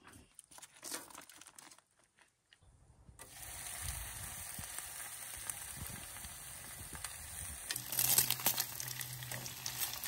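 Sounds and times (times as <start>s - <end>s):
bacon sizzling in a skillet: 3.3s - 10.0s.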